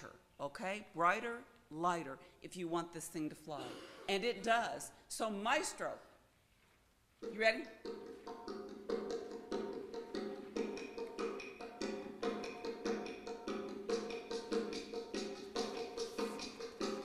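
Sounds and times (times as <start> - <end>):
percussion taps: 7.2 - 14.9.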